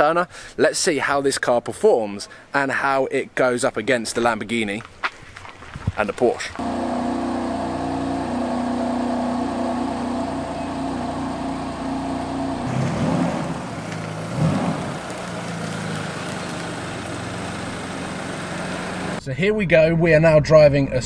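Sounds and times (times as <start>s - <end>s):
car engine revs: 6.6s - 19.2s
car engine running: 6.6s - 19.2s.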